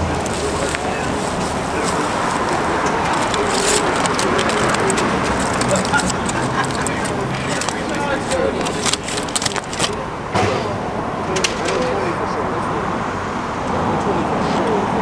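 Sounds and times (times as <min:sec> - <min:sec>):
aluminium foil crinkling: 0:00.0 - 0:10.0
background voices: 0:00.0 - 0:15.0
street noise: 0:00.0 - 0:15.0.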